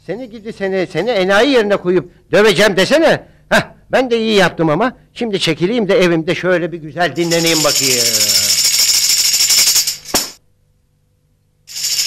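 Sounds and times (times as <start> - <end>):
tambourine shaken rapidly: 7.2 - 10.4, 11.7 - 12.0
tambourine knock: 7.3 - 10.4.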